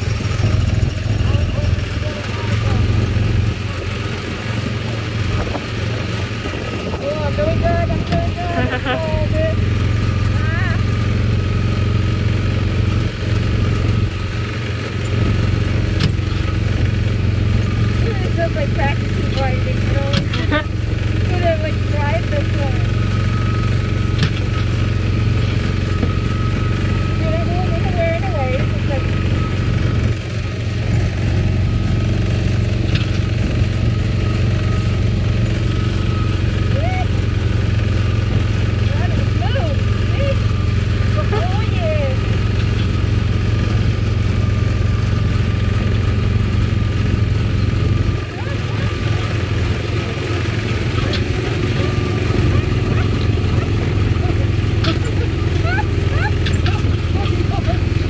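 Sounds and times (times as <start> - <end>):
small gasoline engine running: 0.0 - 58.0.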